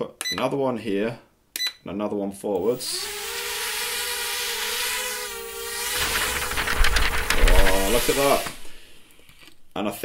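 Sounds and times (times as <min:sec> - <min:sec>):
drone motors whining: 0:02.9 - 0:08.7.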